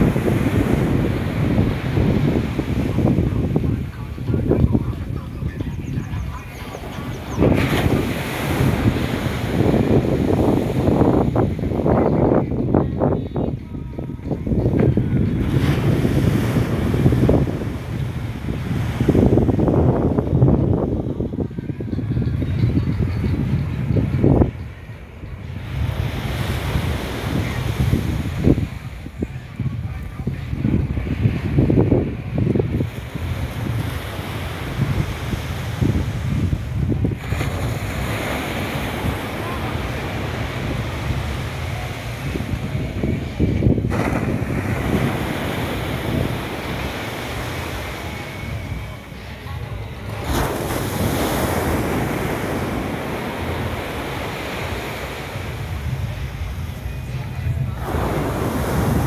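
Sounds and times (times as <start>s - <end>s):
surf waves washing onto beach: 0.0s - 59.0s
wind buffeting microphone: 0.0s - 59.0s.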